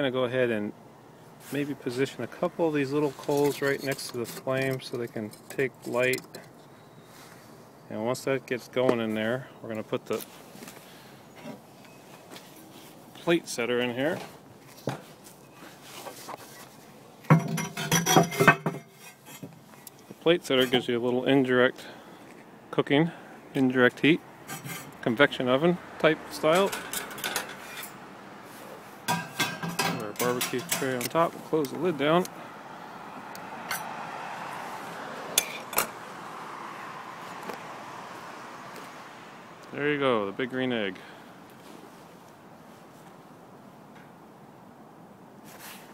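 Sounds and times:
ceramic clinks and scrapes: 0:03.2 - 0:06.4, 0:17.4 - 0:19.5
faint handling noise: 0:10.1 - 0:20.9
ceramic clinking and knocking: 0:17.3 - 0:18.9
metallic clinks on grill grate: 0:29.1 - 0:31.2.

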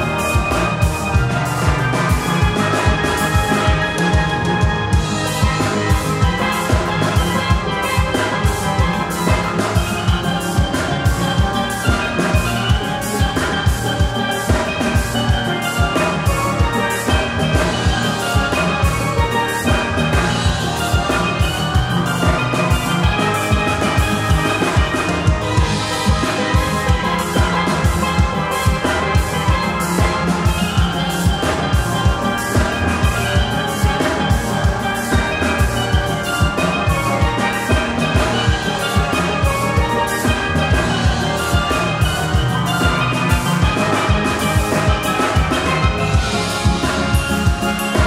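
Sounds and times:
drum kit beat: 0:00.0 - 0:48.0
steel band playing: 0:00.0 - 0:48.0.

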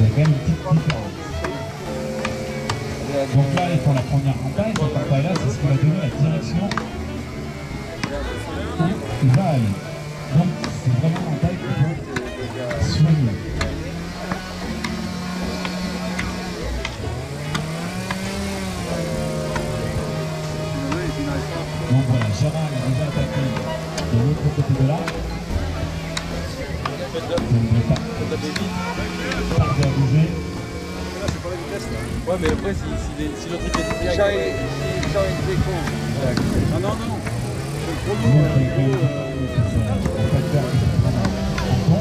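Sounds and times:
music with held notes: 0:00.0 - 0:42.0
axe chopping tree trunk: 0:13.6 - 0:18.4
humming tone: 0:33.4 - 0:42.0.

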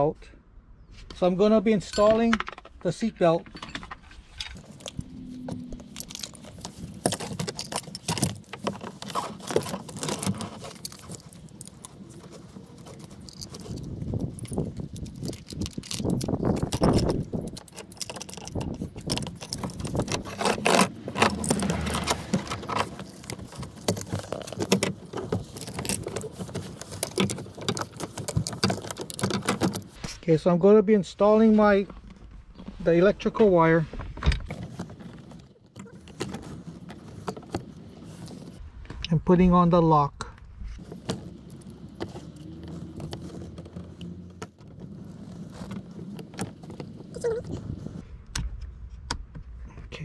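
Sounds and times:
metal brackets clinking: 0:01.8 - 0:02.6
webbing rustling: 0:04.0 - 0:30.2, 0:31.2 - 0:38.7, 0:40.7 - 0:48.0.

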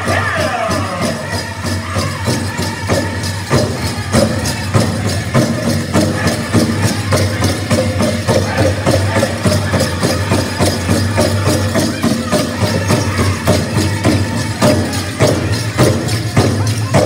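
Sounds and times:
bells jingling: 0:00.0 - 0:17.0
big drum steady beat: 0:00.0 - 0:17.0
people singing: 0:00.0 - 0:17.0.

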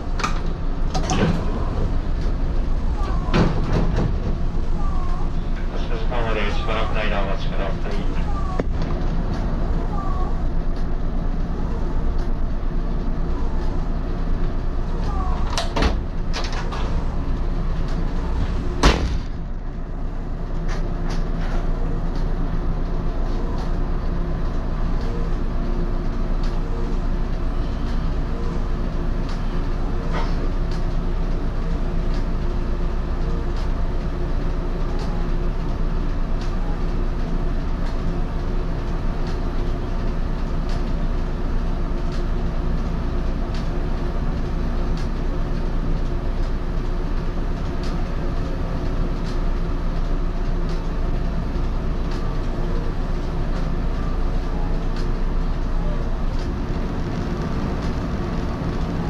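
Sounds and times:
railcar equipment hum: 0:00.0 - 0:59.0.

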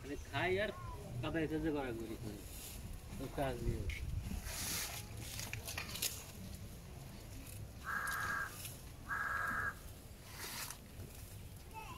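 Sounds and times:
crow cawing: 0:07.8 - 0:09.8.

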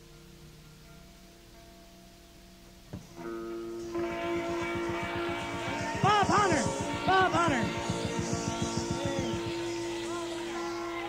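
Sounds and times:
lead instrument bending notes: 0:00.0 - 0:11.0.

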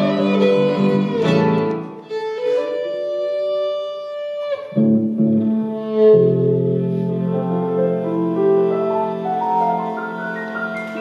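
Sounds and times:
violin long note: 0:00.0 - 0:11.0
bass guitar: 0:04.7 - 0:07.6
digital piano: 0:07.1 - 0:11.0.

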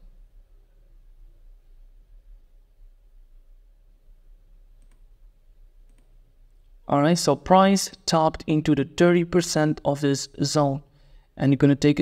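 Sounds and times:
low steady hum: 0:00.0 - 0:11.7
computer mouse clicks: 0:04.7 - 0:05.1, 0:05.8 - 0:06.2
man's voice: 0:06.9 - 0:12.0.

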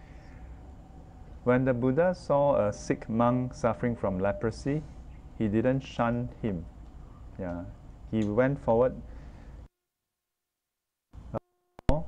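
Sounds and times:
background noise: 0:00.0 - 0:12.0
person speaking: 0:01.4 - 0:09.2.

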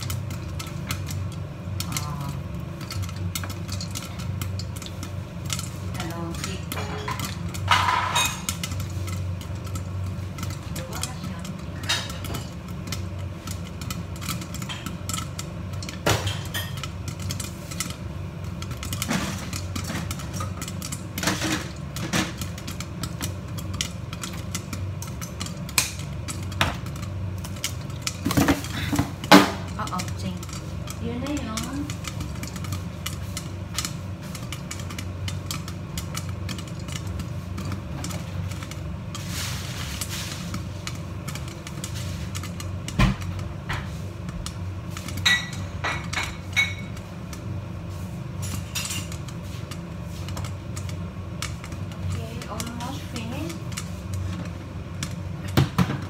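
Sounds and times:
popcorn popping in a pot: 0:00.0 - 0:56.0
steady low hum: 0:00.0 - 0:56.0.

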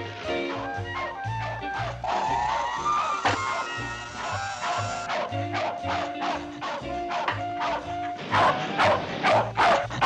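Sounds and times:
background music: 0:00.0 - 0:10.0
cartoon dog barking: 0:00.5 - 0:10.0.

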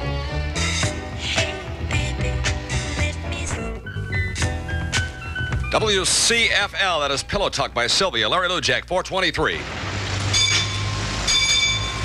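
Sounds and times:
horn-like chord blasts: 0:10.3 - 0:12.0.

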